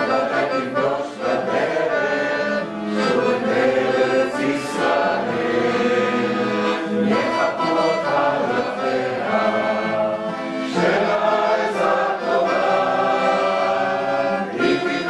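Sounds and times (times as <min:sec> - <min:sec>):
classical guitar: 0:00.0 - 0:15.0
group of voices singing: 0:00.0 - 0:15.0
piano accordion: 0:00.0 - 0:15.0.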